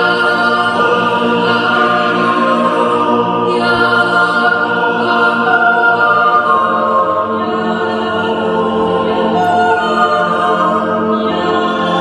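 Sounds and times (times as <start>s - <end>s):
yodel choir singing a cappella: 0.0s - 12.0s.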